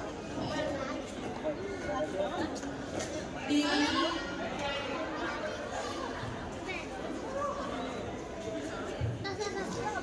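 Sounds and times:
indistinct chatter in a hall: 0.0 - 10.0.

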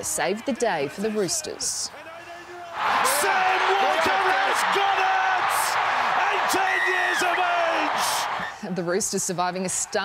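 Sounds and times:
commentators shouting: 0.0 - 8.6
stadium crowd cheering: 0.0 - 10.0.

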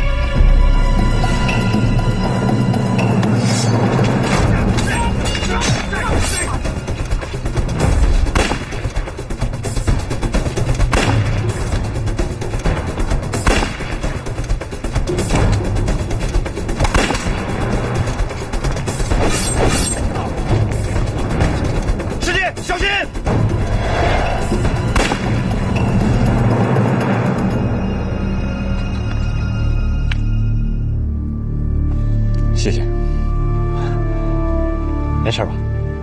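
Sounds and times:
loud action music: 0.0 - 28.3
dramatic film score: 0.0 - 36.0
men shouting and grunting: 4.3 - 7.0.

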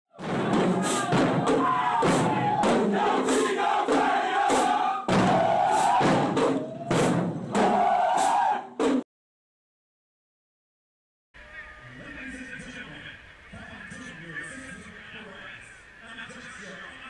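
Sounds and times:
drum hits: 0.1 - 9.0
group shouting and chanting: 0.2 - 8.8.

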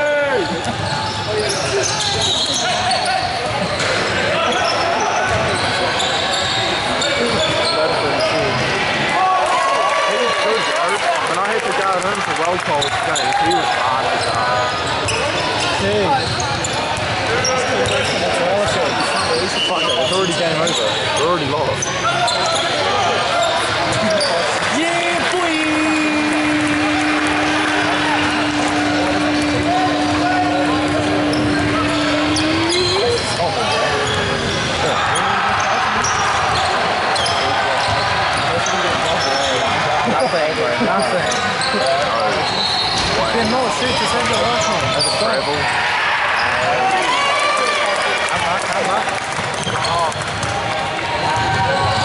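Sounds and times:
sneakers squeaking: 0.4 - 8.4, 12.8 - 24.8, 25.6 - 39.8
voices and shouts: 22.0 - 48.4.

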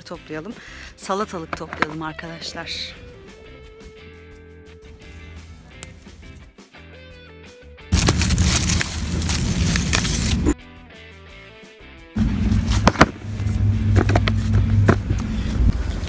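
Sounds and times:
quiet background music: 0.0 - 6.5
rustling of plants: 7.9 - 10.6.

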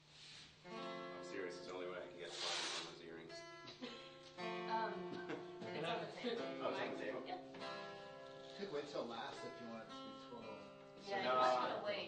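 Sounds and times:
guitar music: 0.6 - 12.0
people talking: 8.6 - 12.0.

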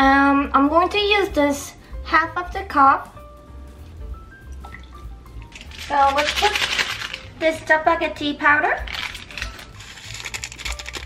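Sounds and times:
plastic packet crackling: 5.4 - 7.7, 8.8 - 11.0
sachet tearing open: 5.5 - 7.4, 8.8 - 11.0.

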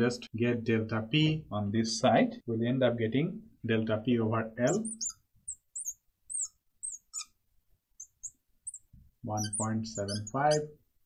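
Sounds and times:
marker squeaking on glass: 4.6 - 7.4, 8.0 - 10.8.

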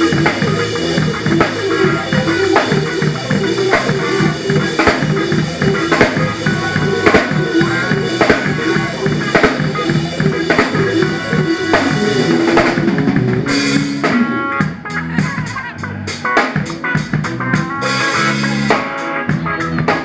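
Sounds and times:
hard drum accents: 0.0 - 20.0
live rock band playing: 0.0 - 20.0.

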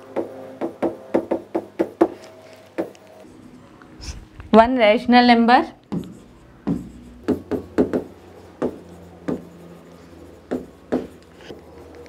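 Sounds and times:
stylus tapping and scraping on board: 0.2 - 3.1, 5.9 - 12.0.

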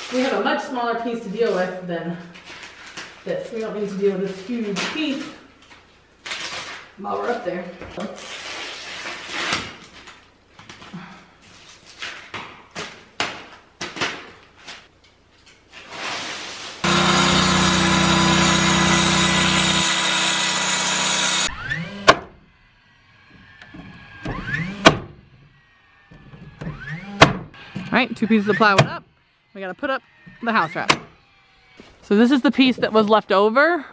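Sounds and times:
circular saw cutting plywood: 16.8 - 22.3.

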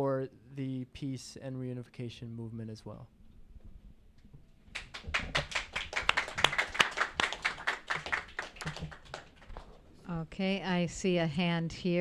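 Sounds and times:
small audience applauding: 4.7 - 9.8.

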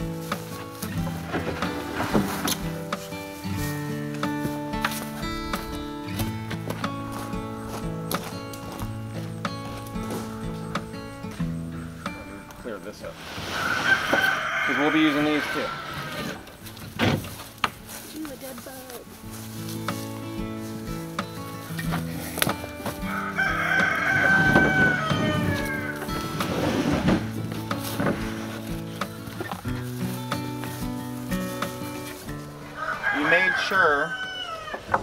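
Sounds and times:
background music with low notes: 0.0 - 13.2, 16.4 - 33.7
rooster crowing: 13.5 - 16.4, 23.0 - 26.7, 32.6 - 35.0
wooden boards knocking: 34.7 - 35.0.

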